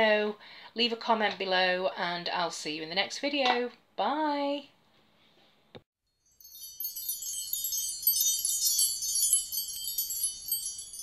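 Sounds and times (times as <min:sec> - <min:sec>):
wind chimes tinkling: 0:06.1 - 0:11.0.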